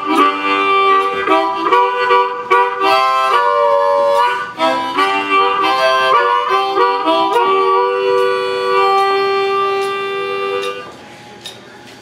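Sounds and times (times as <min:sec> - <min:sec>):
harmonica chord through microphone: 0:00.0 - 0:11.0.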